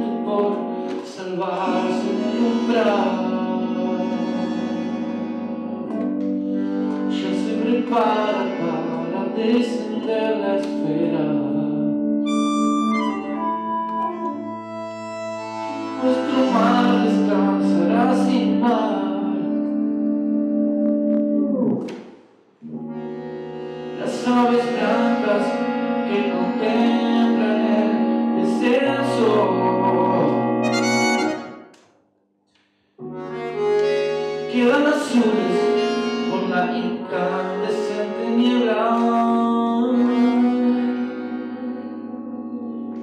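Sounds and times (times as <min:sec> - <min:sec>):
bandoneon chords: 0:00.0 - 0:22.0, 0:22.6 - 0:31.8, 0:33.0 - 0:43.0
electric keyboard: 0:00.0 - 0:22.0, 0:22.6 - 0:31.8, 0:33.0 - 0:43.0.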